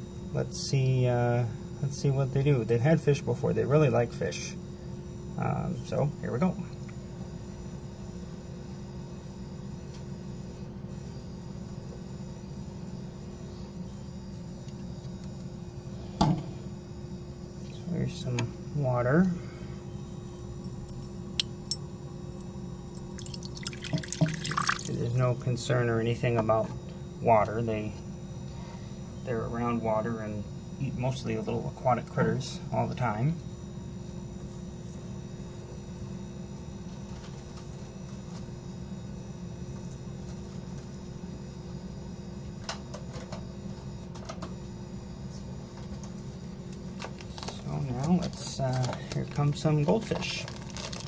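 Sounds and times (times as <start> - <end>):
steady low hum: 0.0 - 51.0
man talking: 0.4 - 4.6, 5.4 - 6.7, 17.8 - 19.4, 24.8 - 28.0, 29.3 - 33.4, 47.6 - 50.5
water dripping: 23.0 - 25.0
water splashing and trickling: 23.1 - 25.0.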